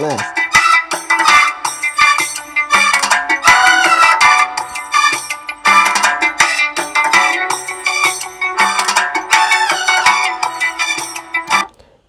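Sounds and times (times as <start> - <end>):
latin percussion: 0.0 - 11.7
rhythm guitar: 0.0 - 11.7.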